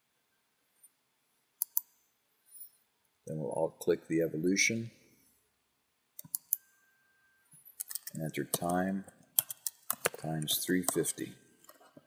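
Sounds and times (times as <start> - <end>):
computer mouse clicks: 1.6 - 2.0, 6.2 - 6.7, 7.8 - 12.0.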